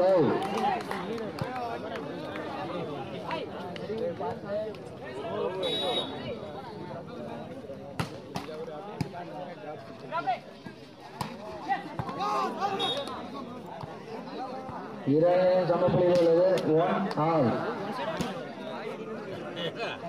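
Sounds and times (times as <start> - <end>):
people talking and calling out: 0.0 - 20.0.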